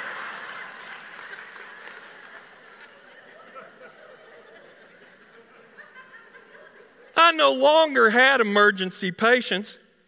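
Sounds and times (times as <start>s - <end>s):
audience laughing: 0.0s - 7.2s.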